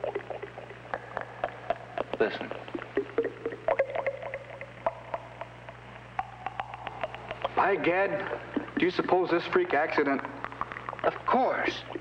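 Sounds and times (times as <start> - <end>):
liquid bubbling and popping: 0.0 - 12.0.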